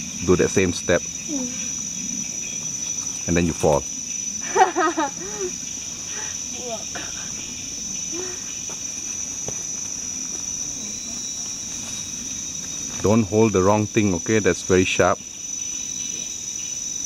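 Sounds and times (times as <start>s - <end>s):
insects droning: 0.0s - 17.0s.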